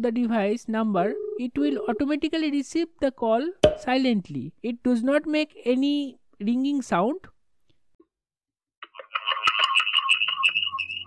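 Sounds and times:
shrill phone-filtered chirping: 0:09.5 - 0:11.0.

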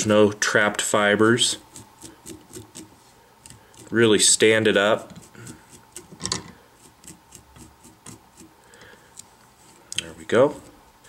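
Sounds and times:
small brush scratching fibers: 0:00.8 - 0:10.9.

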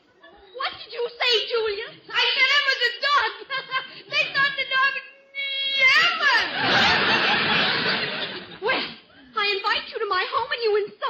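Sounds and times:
person's voice: 0:01.1 - 0:06.5
studio audience laughing: 0:06.3 - 0:08.6.

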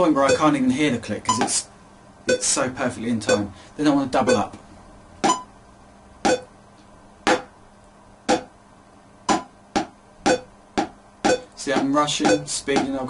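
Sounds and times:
metronome clicking: 0:04.3 - 0:04.5, 0:05.2 - 0:05.5, 0:09.3 - 0:13.0
stick tapping on a book: 0:08.3 - 0:08.5, 0:09.3 - 0:13.0.

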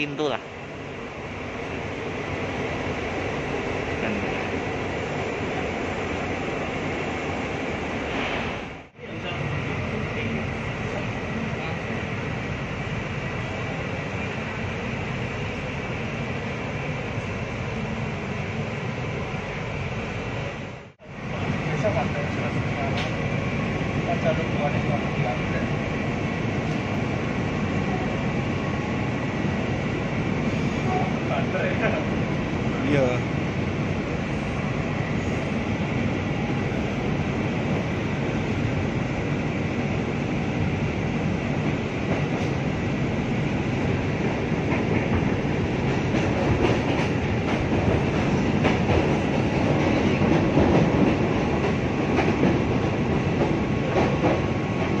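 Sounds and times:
train carriage rumble: 0:00.0 - 0:55.0.

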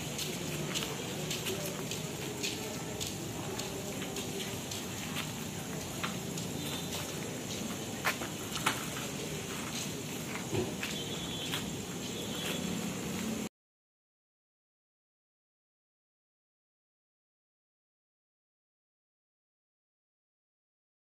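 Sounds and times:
steady high hiss: 0:00.0 - 0:13.5.

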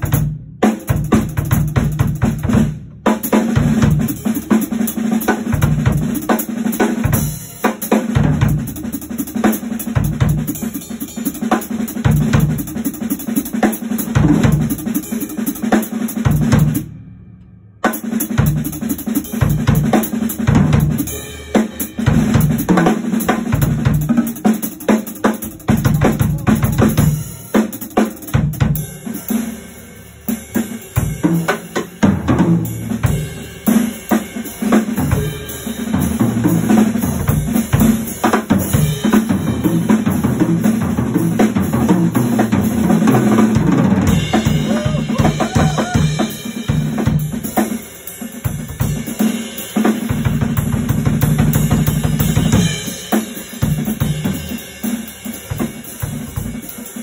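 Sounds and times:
jazz drum solo: 0:00.0 - 0:17.0, 0:17.8 - 0:57.0
cymbals: 0:44.0 - 0:50.7.

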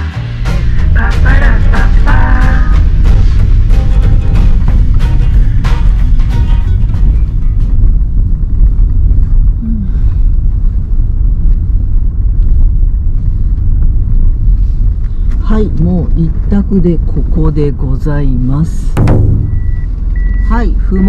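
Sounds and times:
background music: 0:00.0 - 0:10.2
car rumbling over unpaved road: 0:00.0 - 0:21.0.

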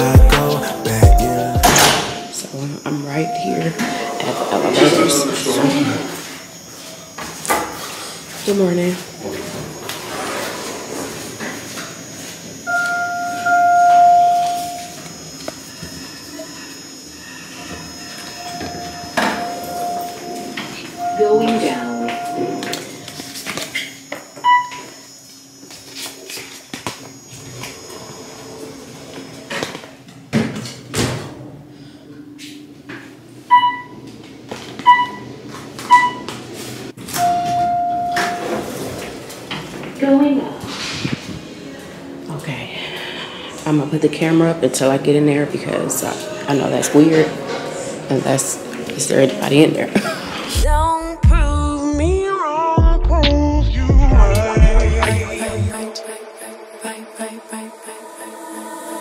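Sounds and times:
elevator arrival chime: 0:00.0 - 0:05.7, 0:12.6 - 0:15.1, 0:17.2 - 0:23.4, 0:33.5 - 0:34.0, 0:37.1 - 0:38.9
long steady tone: 0:00.0 - 0:06.8, 0:11.7 - 0:25.8, 0:37.1 - 0:38.6
elevator doors sliding: 0:03.1 - 0:06.4, 0:09.2 - 0:24.9, 0:33.5 - 0:42.2, 0:42.8 - 0:50.6.

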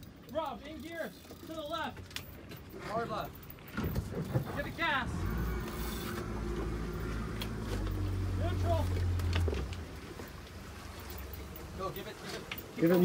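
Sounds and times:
boat engine hum: 0:03.3 - 0:13.0.

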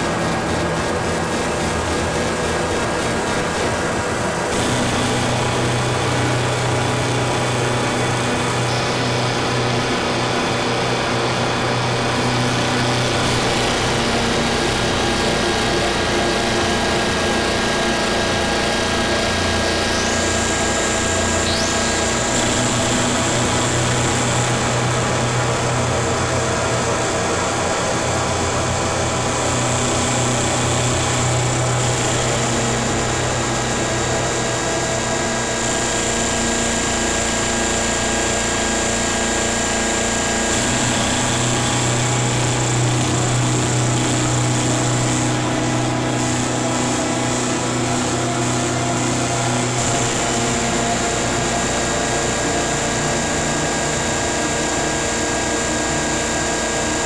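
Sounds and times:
distorted noise wall: 0:00.0 - 0:57.0
low drone: 0:00.0 - 0:57.0.

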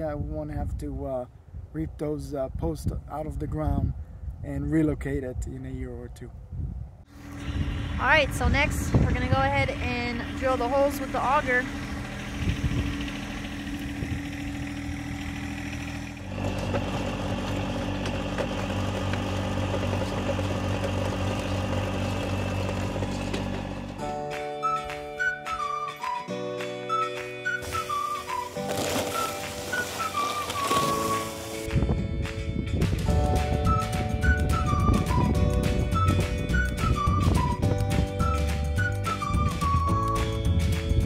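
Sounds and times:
tractor engine running: 0:07.1 - 0:24.4, 0:27.4 - 0:41.0
music with whistled melody: 0:24.0 - 0:41.0.

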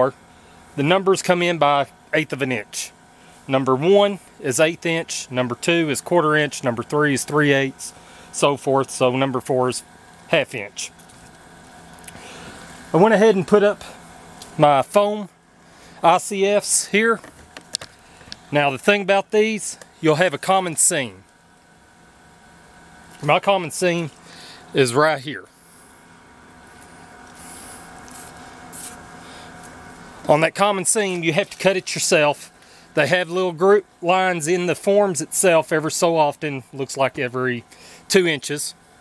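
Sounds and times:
faint steady hum: 0:00.0 - 0:39.0
man speaking: 0:00.8 - 0:11.0, 0:12.9 - 0:15.3, 0:16.0 - 0:17.3, 0:18.5 - 0:21.2, 0:23.2 - 0:25.5, 0:30.2 - 0:38.8.

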